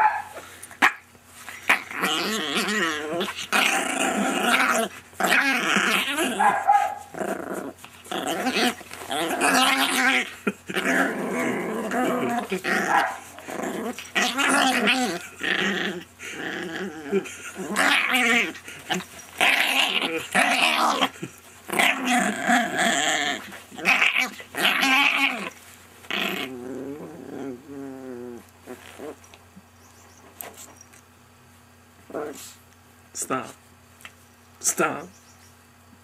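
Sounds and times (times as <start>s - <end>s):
small dog play-growling: 0.0s - 29.7s, 32.0s - 32.7s.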